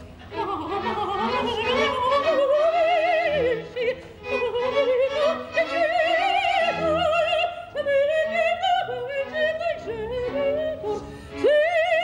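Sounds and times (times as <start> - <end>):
woman singing operatically: 0.3 - 12.0.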